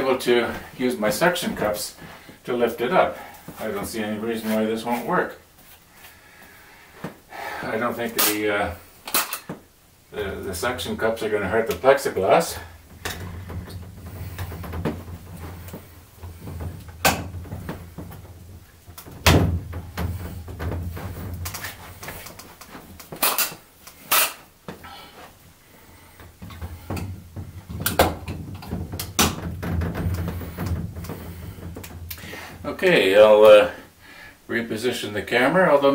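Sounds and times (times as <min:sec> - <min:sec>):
sharp knocks and clicks: 0:26.2 - 0:32.2.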